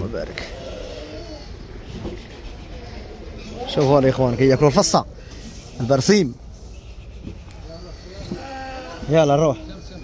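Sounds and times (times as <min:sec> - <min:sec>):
sheep bleating: 0:08.0 - 0:09.6.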